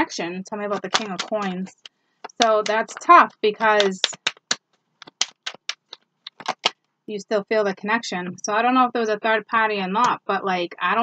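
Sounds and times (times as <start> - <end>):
cards clicking and snapping: 0.7 - 3.1, 3.7 - 6.7.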